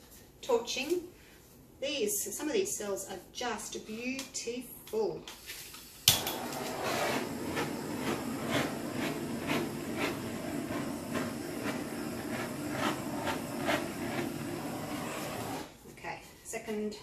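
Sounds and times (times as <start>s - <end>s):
gas torch hissing flame: 5.9s - 15.7s.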